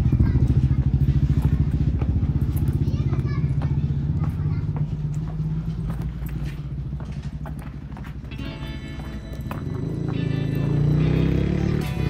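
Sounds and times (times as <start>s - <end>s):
low pulsing engine rumble: 0.0s - 11.1s
music: 8.0s - 12.0s.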